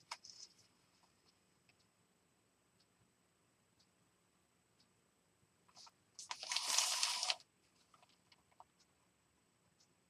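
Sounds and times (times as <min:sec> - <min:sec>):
paper rustling: 0:05.8 - 0:08.2.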